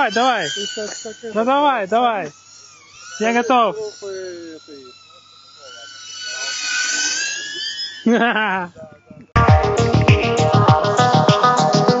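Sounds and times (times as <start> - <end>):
drone propellers whining: 0.0 - 8.8, 9.4 - 12.0.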